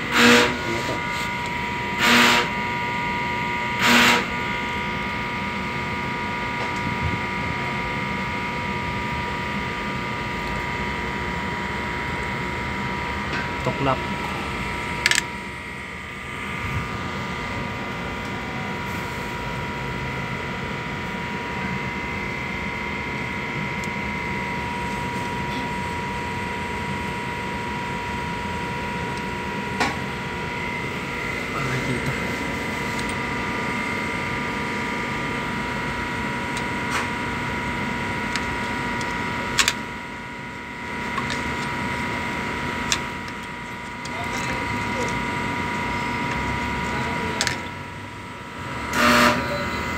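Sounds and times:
machine hum with high whine: 0.0 - 49.9.

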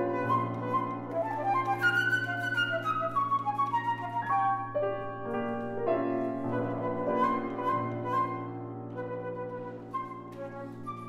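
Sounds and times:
piano chords: 0.0 - 11.0
flute held notes: 6.5 - 11.0.

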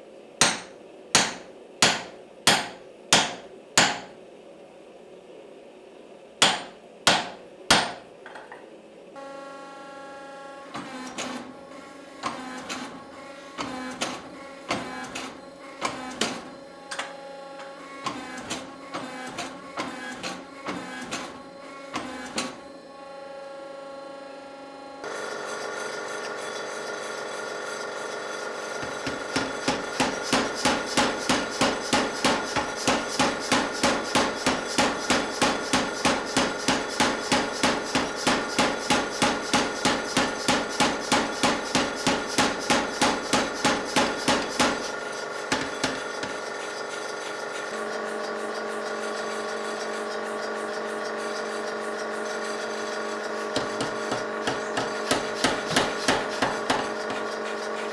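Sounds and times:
power hammer pounding: 0.4 - 4.1, 6.4 - 8.0, 28.8 - 46.5, 53.3 - 57.9
power hammer motor running: 25.0 - 57.9.

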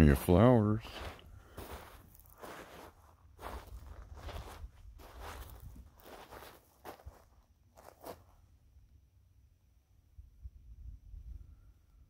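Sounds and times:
footsteps crunching on gravel: 0.2 - 8.4.

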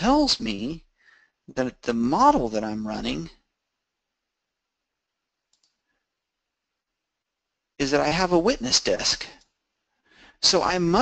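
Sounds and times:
computer mouse clicks: 5.5 - 5.9.

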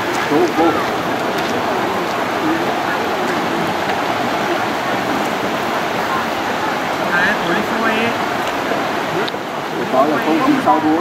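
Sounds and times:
stream water rushing: 0.0 - 11.0.

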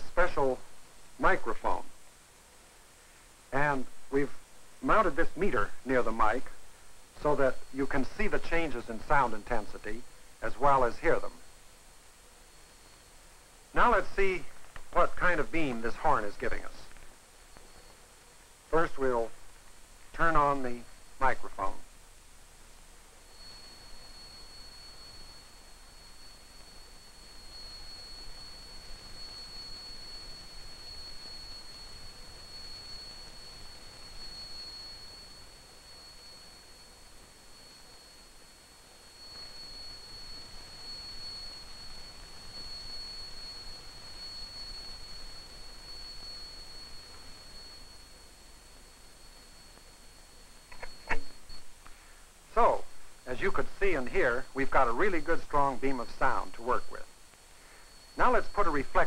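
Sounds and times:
high-pitched test tone: 23.1 - 59.0.

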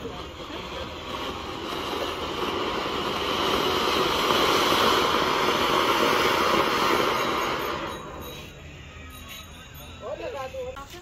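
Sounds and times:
fountain fireworks crackling hiss: 0.0 - 8.6.

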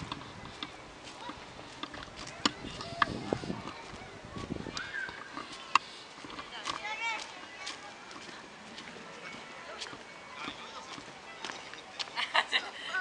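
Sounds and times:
distant voices of people: 0.0 - 13.0.

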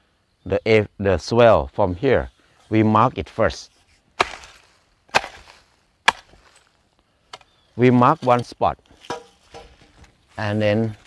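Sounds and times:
hoe chopping into ground: 4.2 - 6.8, 8.1 - 10.0.

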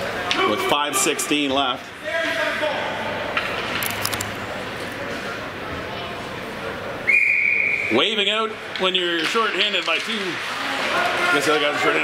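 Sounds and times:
low murmur of rink: 0.0 - 12.0
referee's whistle blast: 7.1 - 8.0.

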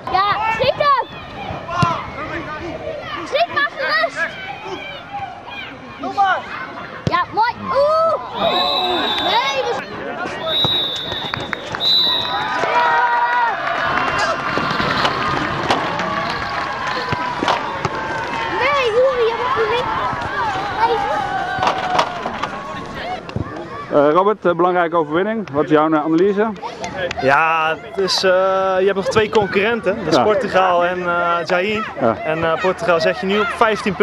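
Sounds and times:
crowd shouting and cheering: 0.0 - 25.2, 26.2 - 34.0
referee's whistle blasts: 8.4 - 9.6, 10.4 - 12.4.

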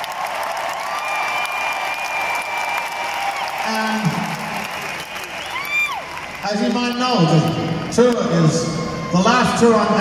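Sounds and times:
crowd applauding and cheering: 0.0 - 10.0.

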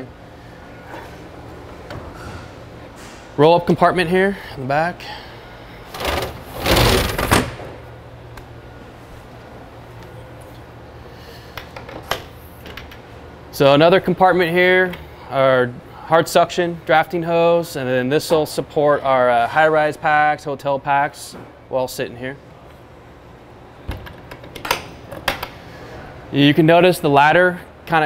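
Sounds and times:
metal door thump: 6.6 - 7.8.

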